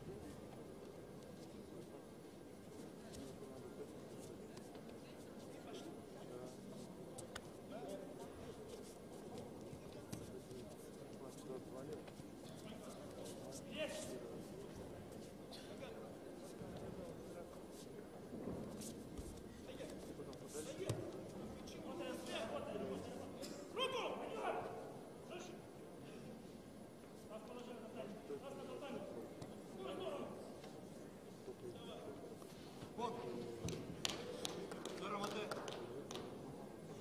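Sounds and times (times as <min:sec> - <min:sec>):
voices echoing in a hall: 0:00.0 - 0:37.0.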